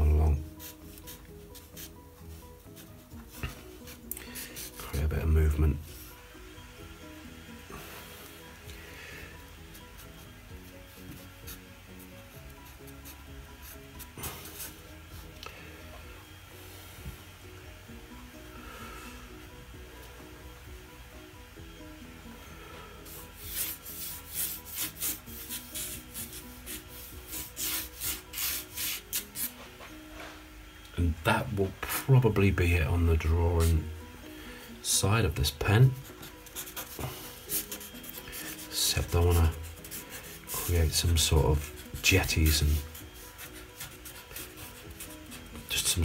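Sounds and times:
quiet background music: 0.0 - 46.0
marker scratching on paper: 0.6 - 1.9, 23.4 - 29.5, 36.0 - 40.7, 41.7 - 45.5.

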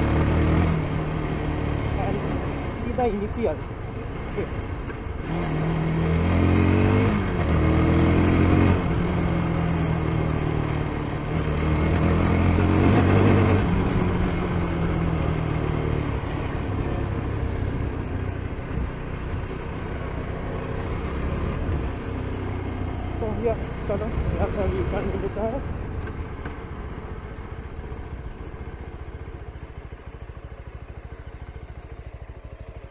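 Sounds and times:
motorcycle engine revving: 0.0 - 32.9
wind and road noise: 0.0 - 32.9.

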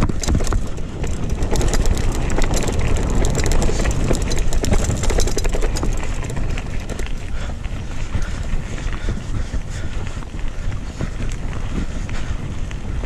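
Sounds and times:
bike rattling over rough ground: 0.0 - 13.0
wind buffeting microphone: 0.0 - 13.0.

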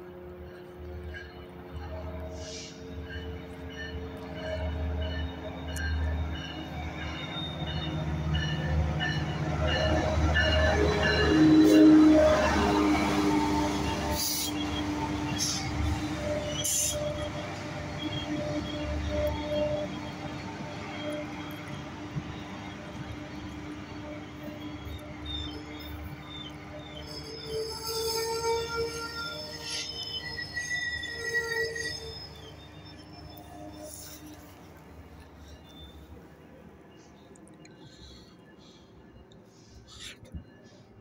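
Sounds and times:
train rolling past: 0.0 - 41.0
train wheels squealing: 0.0 - 41.0.

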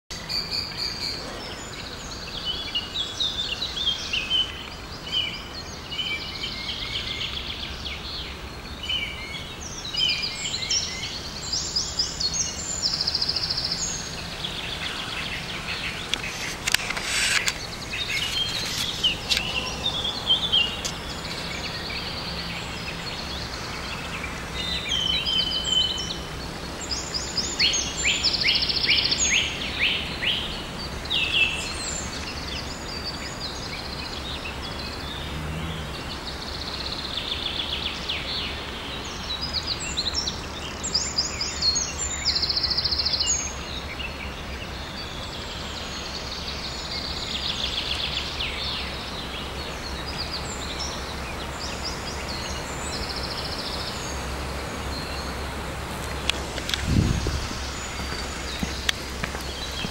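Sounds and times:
songbirds chirping and trilling: 0.1 - 59.9.

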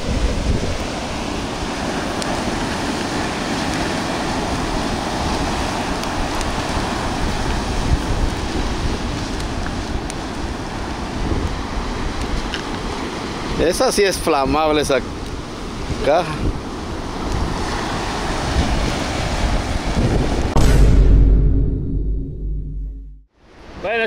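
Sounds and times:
ocean surf washing onto beach: 0.0 - 20.6
wind buffeting microphone: 0.0 - 20.6.

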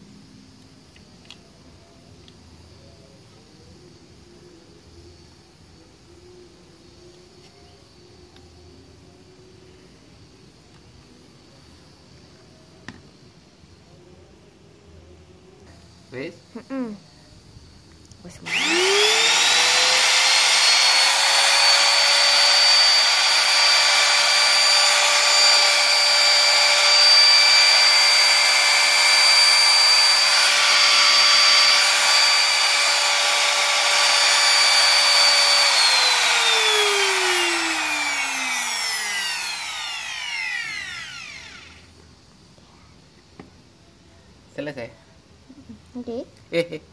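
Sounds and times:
trim router whine: 18.4 - 42.0.

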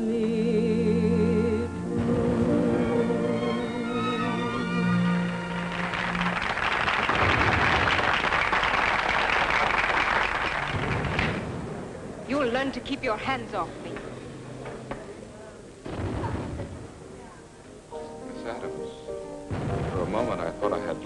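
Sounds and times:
woman singing with vibrato: 0.0 - 4.9
band accompaniment: 1.8 - 6.6
audience applauding: 4.3 - 11.5.

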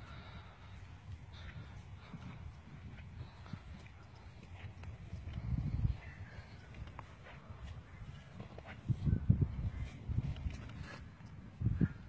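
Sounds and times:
hooves thudding on grass: 0.0 - 12.0.

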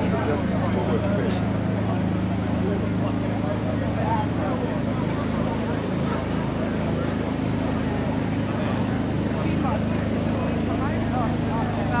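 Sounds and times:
crowd chatter: 0.0 - 12.0
engine humming steadily: 0.0 - 12.0.

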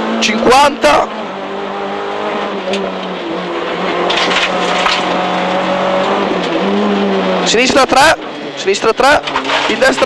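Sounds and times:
car engine running hard: 0.0 - 10.0
road and tyre noise: 0.0 - 10.0.

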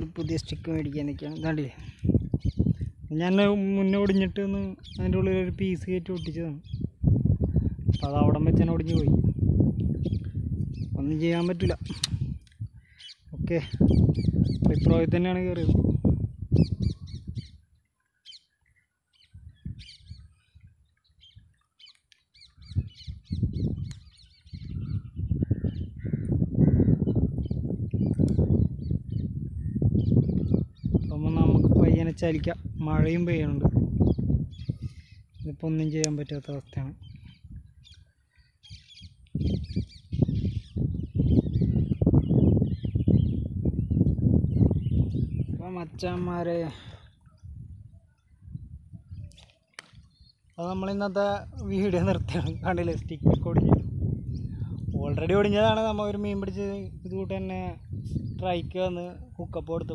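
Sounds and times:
small birds chirping: 0.0 - 59.8
low rumble on microphone: 22.5 - 35.6, 38.9 - 49.4, 51.0 - 59.9
man speaking: 45.6 - 47.0, 50.6 - 53.8, 55.0 - 57.8.

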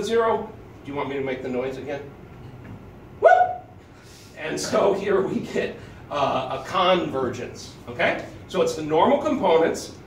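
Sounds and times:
man calling woo: 3.2 - 3.7.

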